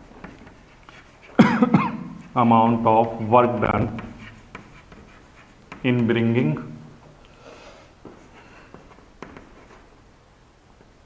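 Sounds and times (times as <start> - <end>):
man coughing: 1.4 - 2.2.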